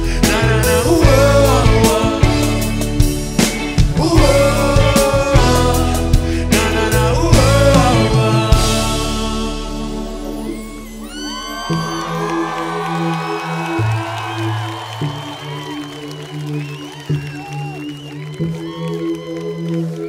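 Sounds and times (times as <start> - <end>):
audience whooping and cheering: 10.4 - 20.0.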